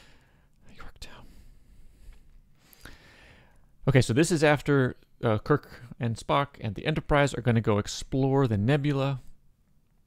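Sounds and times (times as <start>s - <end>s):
breathy whisper-like sounds: 0.6s - 2.9s.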